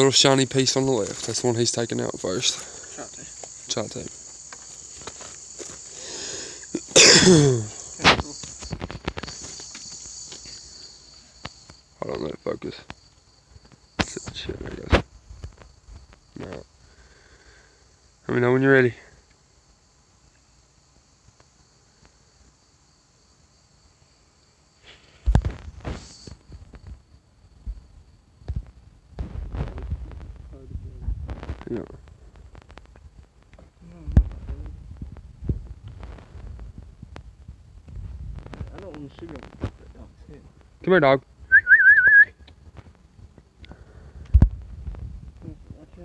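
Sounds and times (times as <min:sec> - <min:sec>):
insects buzzing: 0:00.0 - 0:46.0
person whistling: 0:41.5 - 0:42.4.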